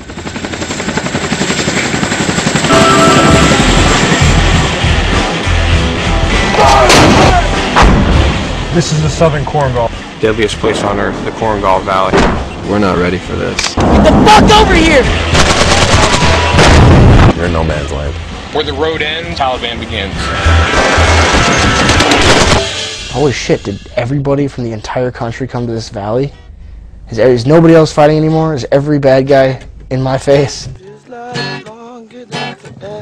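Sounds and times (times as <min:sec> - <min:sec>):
helicopter rotor chopping: 0:00.0 - 0:06.6, 0:07.3 - 0:24.3
dramatic trailer music: 0:02.7 - 0:24.1
steady low rumble: 0:02.7 - 0:30.8
deep bass hits: 0:03.3 - 0:18.8
automatic gunfire: 0:15.3 - 0:16.9.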